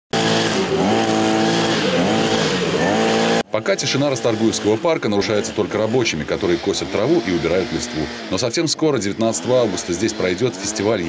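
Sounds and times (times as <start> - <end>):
string trimmer engine revving: 0.1 - 11.0.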